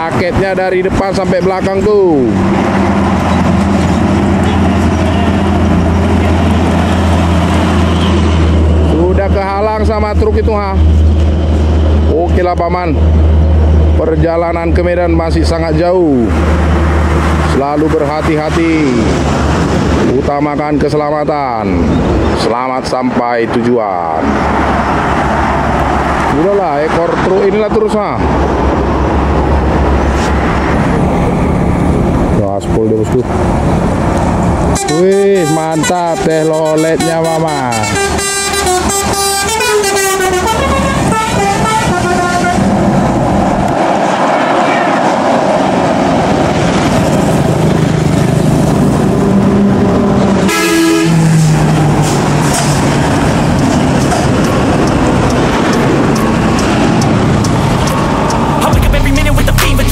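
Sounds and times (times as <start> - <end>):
heavy highway traffic: 0.0 - 59.9
truck and bus engine rumble: 0.0 - 59.9
vehicle horn blast: 34.7 - 42.6, 50.5 - 51.3.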